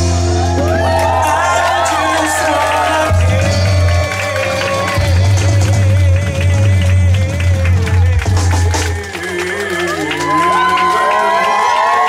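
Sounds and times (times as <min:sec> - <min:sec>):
rock band playing: 0:00.0 - 0:09.1
crowd cheering and whooping: 0:00.0 - 0:12.0.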